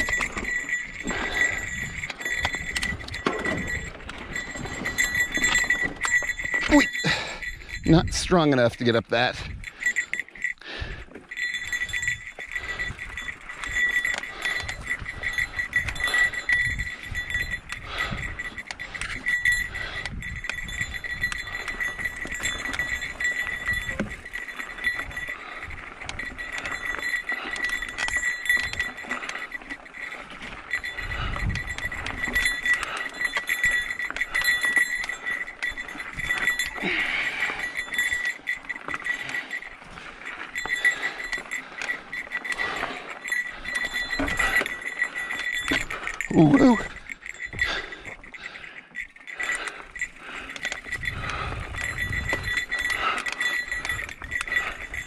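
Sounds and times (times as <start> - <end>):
small bike bell jingling: 0.0 - 55.0
low wind rumble: 10.6 - 26.6, 30.8 - 32.4, 49.6 - 53.2.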